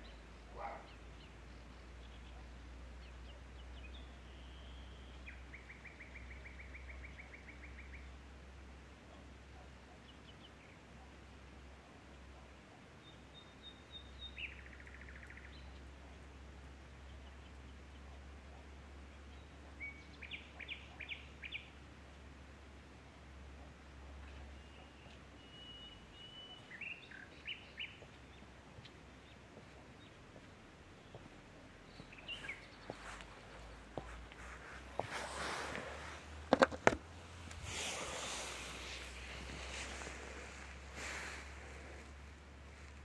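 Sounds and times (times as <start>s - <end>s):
bird chirping: 13.0s - 21.8s, 24.0s - 35.2s.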